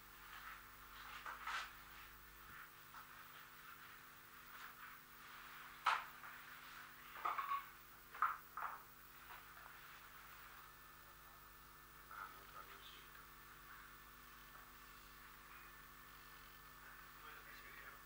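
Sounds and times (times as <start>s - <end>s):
recording hum and hiss: 0.0s - 18.0s.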